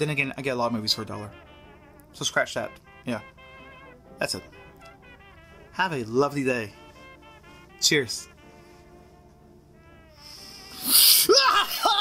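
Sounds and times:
man screaming: 10.9 - 12.0.

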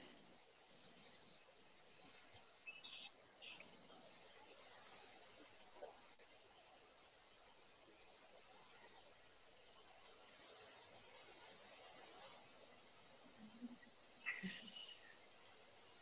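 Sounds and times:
faint high-pitched whine: 0.0 - 16.0.

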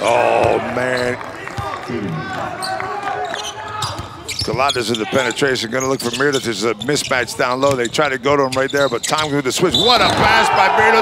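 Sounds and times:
players calling out: 0.0 - 5.4, 9.7 - 11.0.

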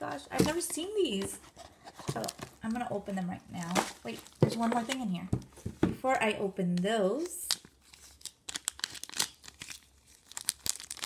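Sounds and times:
plastic packaging crinkling: 2.0 - 5.2, 7.2 - 11.0.

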